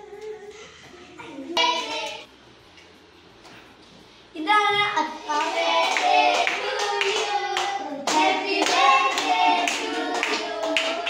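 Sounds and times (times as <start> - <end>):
voices singing along: 5.2 - 11.0
children clapping in time: 5.4 - 11.0.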